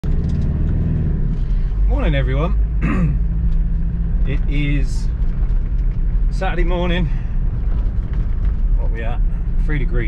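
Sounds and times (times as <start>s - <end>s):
car engine droning: 0.0s - 10.0s
road noise inside car: 0.0s - 10.0s.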